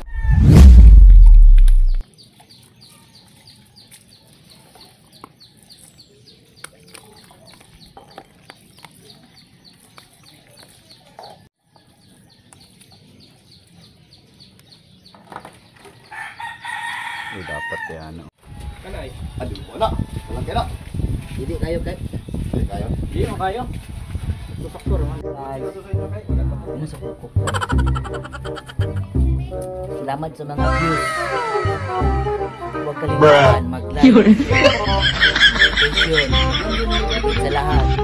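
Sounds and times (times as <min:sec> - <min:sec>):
rooster crowing: 0:00.0 - 0:00.4, 0:16.1 - 0:18.1
loud low boom: 0:00.0 - 0:02.0.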